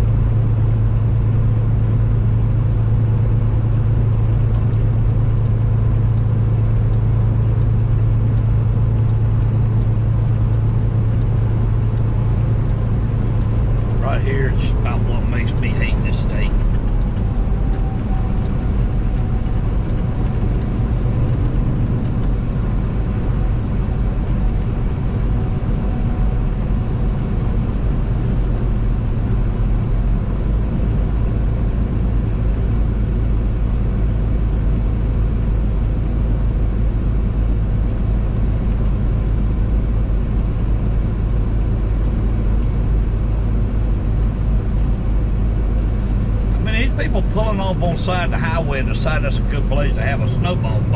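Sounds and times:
truck engine hum: 0:00.0 - 0:50.9.

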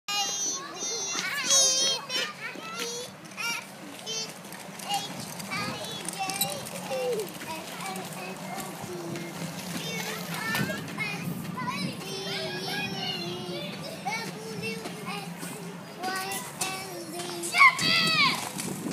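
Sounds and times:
young children calling and chattering: 0:00.1 - 0:18.9
child shouting: 0:12.2 - 0:13.6, 0:17.4 - 0:18.5.

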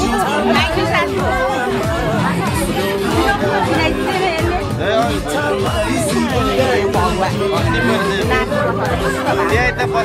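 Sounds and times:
music playing: 0:00.0 - 0:10.0
people chattering: 0:00.0 - 0:10.0.

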